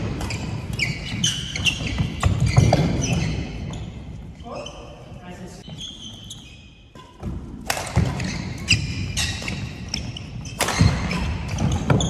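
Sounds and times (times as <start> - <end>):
racket hitting shuttlecock: 0.0 - 3.5, 6.9 - 12.0
shoes squeaking on wooden floor: 0.0 - 7.3, 8.0 - 12.0.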